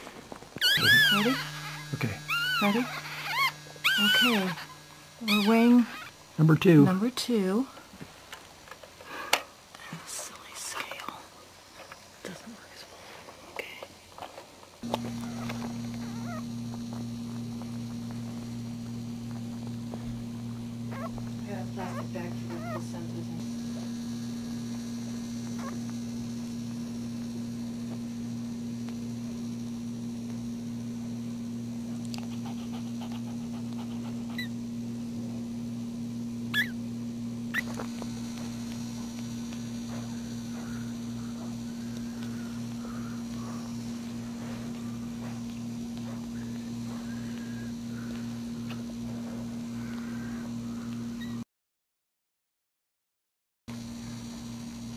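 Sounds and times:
low electrical hum: 0:00.0 - 0:51.4, 0:53.7 - 0:54.9
puppy squeaking: 0:00.6 - 0:06.2, 0:15.2 - 0:16.4, 0:20.9 - 0:21.2, 0:21.8 - 0:22.9, 0:36.5 - 0:36.8.

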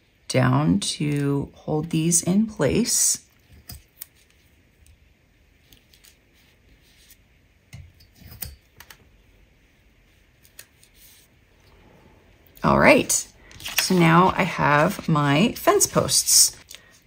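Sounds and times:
tape and paper clicks and crinkles: 0:05.6 - 0:07.2, 0:13.5 - 0:15.1.

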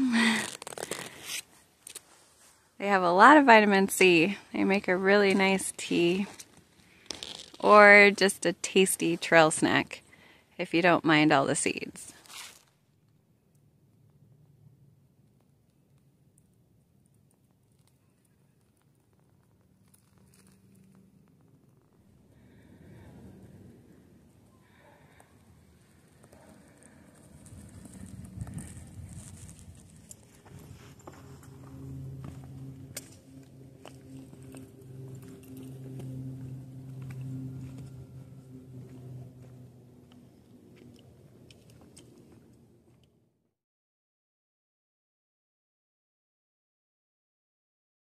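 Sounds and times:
low hum: 0:19.6 - 0:43.4
footsteps on gravelly trail: 0:26.2 - 0:42.4.

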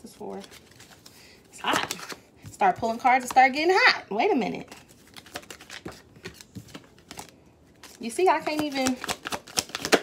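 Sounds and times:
cards being shuffled: 0:00.2 - 0:03.4, 0:04.6 - 0:10.0.

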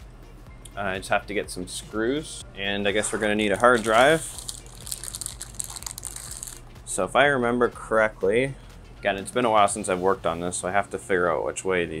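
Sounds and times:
anti-static bag crinkling: 0:03.7 - 0:06.6.

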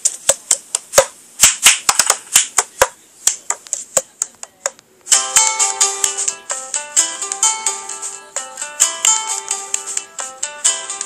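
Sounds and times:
sharp clicks and taps: 0:00.0 - 0:04.9.

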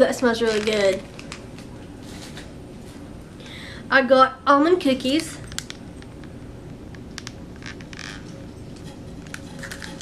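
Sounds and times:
plastic packs crinkling: 0:00.0 - 0:01.7.

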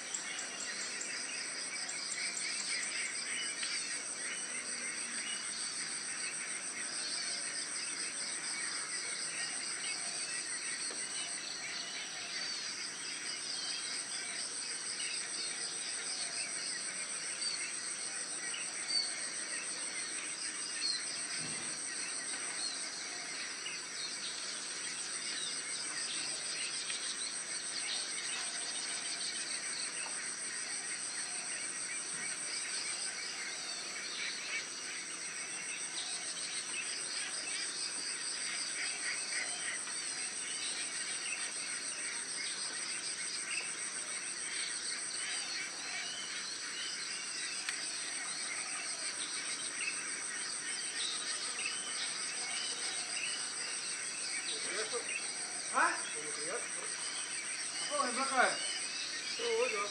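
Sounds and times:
high-pitched insect trilling: 0:51.4 - 0:59.9.

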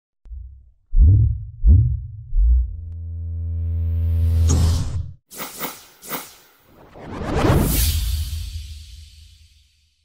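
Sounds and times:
deep booming hits: 0:00.3 - 0:02.9.

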